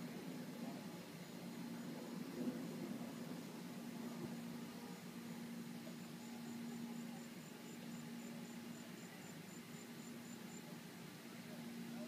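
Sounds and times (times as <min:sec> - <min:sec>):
faint cricket chirping: 0:00.0 - 0:12.0
steady low hum: 0:00.0 - 0:12.0.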